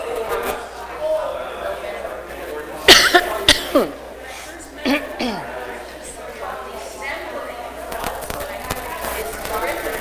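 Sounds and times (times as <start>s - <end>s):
faint room chatter: 0.0s - 10.0s
person coughing: 2.9s - 4.0s, 4.8s - 5.5s.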